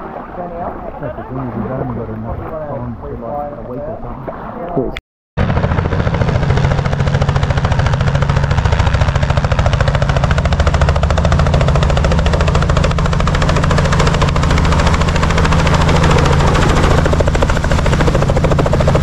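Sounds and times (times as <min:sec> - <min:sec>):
helicopter rotor chopping: 0:05.4 - 0:19.0
low engine drone: 0:05.4 - 0:19.0.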